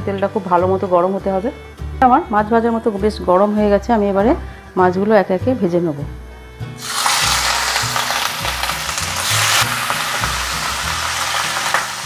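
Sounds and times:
fish sizzling in hot oil: 6.8 - 12.0.

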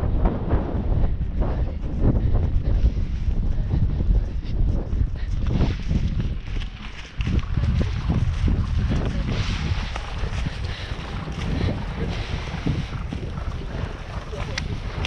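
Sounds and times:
wind buffeting microphone: 0.0 - 15.0
hoofbeats on wet turf: 5.4 - 15.0.

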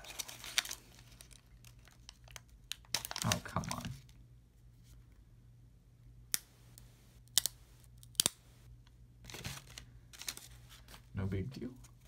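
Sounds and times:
soft rustle of cards: 0.0 - 5.3, 9.2 - 12.0.

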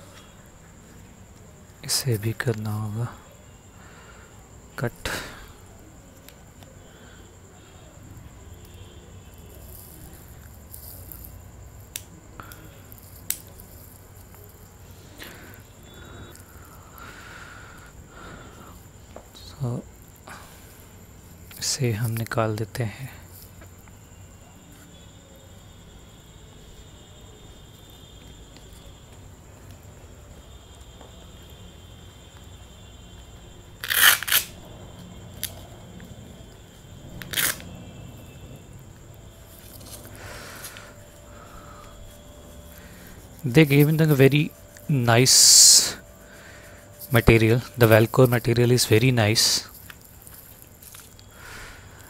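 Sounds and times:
velcro strap ripping open: 33.8 - 34.6, 37.2 - 37.7
gloves rustling: 39.2 - 52.0.

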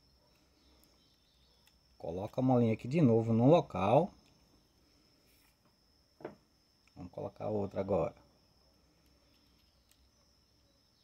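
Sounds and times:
tiny faint clicks: 0.3 - 2.0, 9.0 - 10.1.

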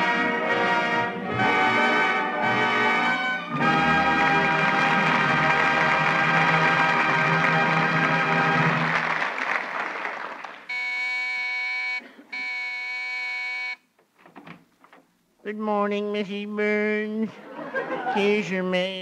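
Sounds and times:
brass-led orchestral music: 0.0 - 9.1
electric doorbell buzzer: 10.7 - 13.8.

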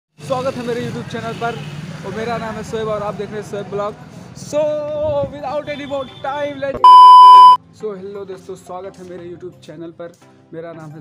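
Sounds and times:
electronic beep tone: 6.8 - 7.6.

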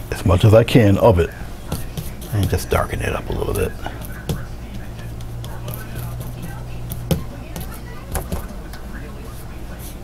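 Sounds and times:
low electrical hum: 0.0 - 10.0
paintbrush scrubbing on canvas: 1.7 - 7.0, 9.3 - 10.0.

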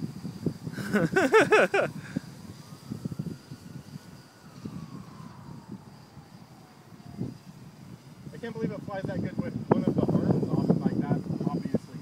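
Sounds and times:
multicopter motors whining: 0.0 - 12.0
thin steady high tone: 0.0 - 12.0
wind rumble on microphone: 0.0 - 12.0.

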